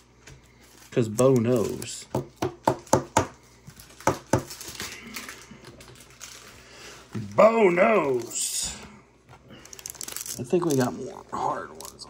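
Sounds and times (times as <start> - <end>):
soft card rustling: 0.1 - 2.1, 9.5 - 12.0.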